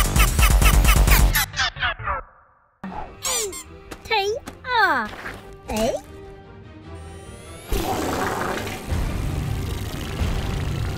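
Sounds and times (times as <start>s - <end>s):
cartoon fart sound effect: 7.7s - 10.9s.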